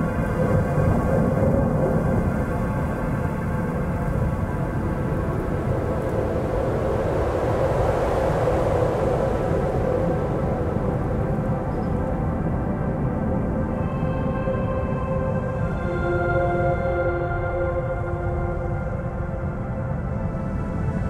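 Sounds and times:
rain: 0.0 - 16.1
ambient drone tones: 0.0 - 21.0
wind: 0.0 - 21.0.

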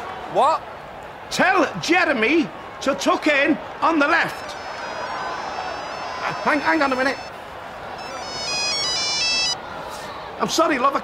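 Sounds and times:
phone ringtone: 4.3 - 7.3, 8.0 - 9.6.

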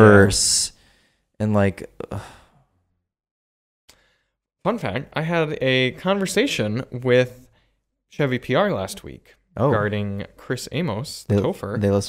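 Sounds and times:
man sighing: 2.0 - 2.6.

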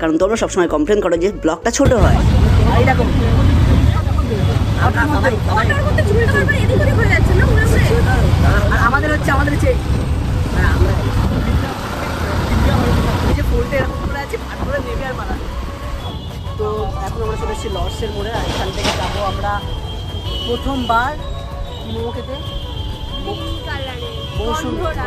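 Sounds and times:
people talking: 1.3 - 9.8, 10.5 - 15.5, 23.2 - 25.0
low vehicle rumble: 1.9 - 25.0.

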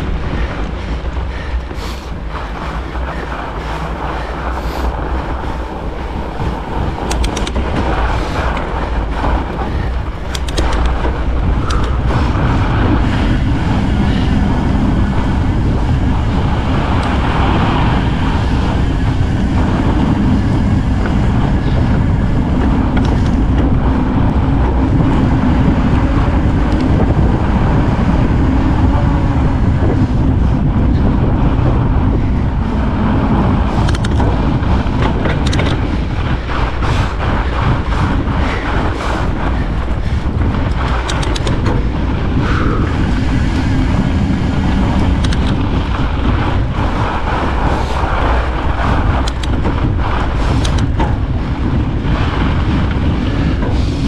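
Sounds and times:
scattered clicks: 0.0 - 13.1, 19.6 - 25.1, 25.7 - 27.3, 33.4 - 44.0, 44.6 - 54.0
tyres rolling on snow: 0.0 - 54.0
wind buffeting microphone: 0.0 - 54.0.

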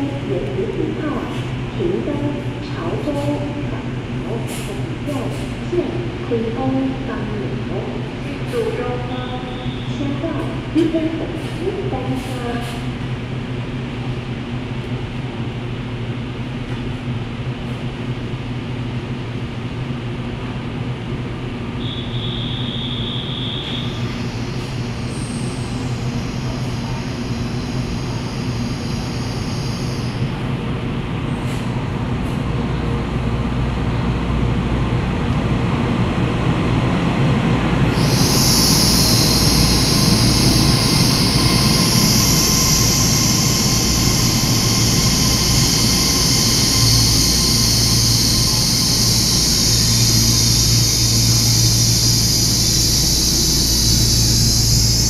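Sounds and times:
train rumble: 0.0 - 55.0
high-pitched brake squeal: 21.8 - 30.2, 38.0 - 55.0.

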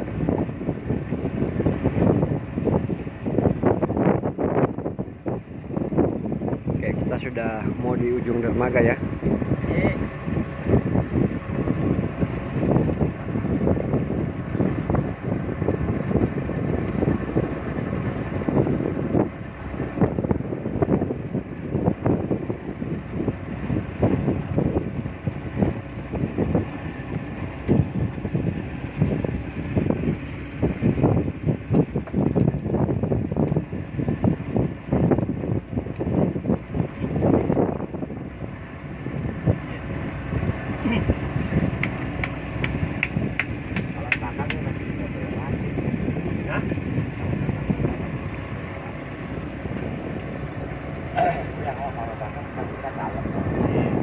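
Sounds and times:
outboard motor running: 0.0 - 54.0
wind buffeting microphone: 0.0 - 54.0.

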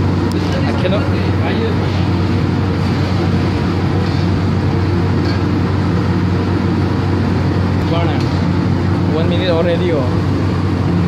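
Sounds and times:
gas range roaring: 0.0 - 11.0.

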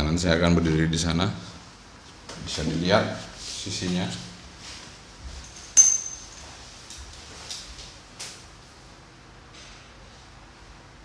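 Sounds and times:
hard object clinking: 5.4 - 6.6.

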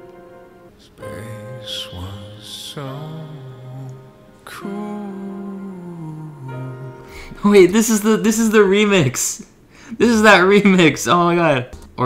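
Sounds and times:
soft backing music: 0.0 - 9.1
man singing slow song: 0.8 - 7.4.

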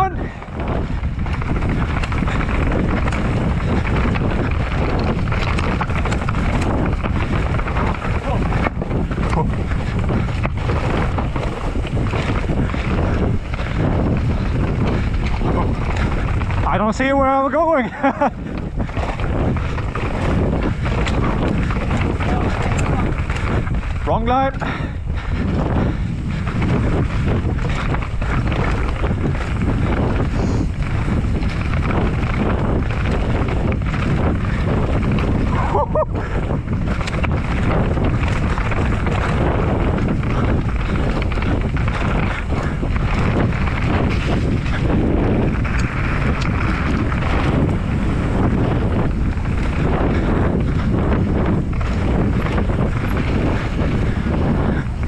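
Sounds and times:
bike knocks and rattles: 0.0 - 55.0
bike tyres rolling on dirt: 0.0 - 55.0
wind rushing over microphone: 0.0 - 55.0.

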